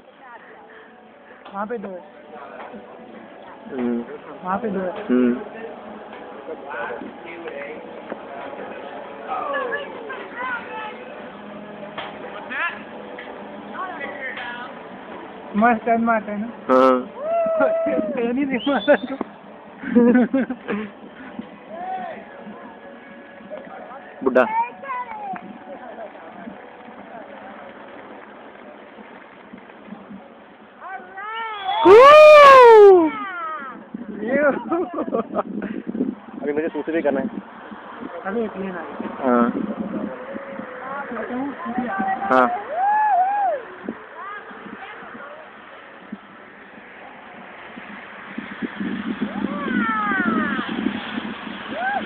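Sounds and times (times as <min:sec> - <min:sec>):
faint outdoor background: 0:00.0 - 0:52.0
wind buffeting microphone: 0:32.8 - 0:52.0.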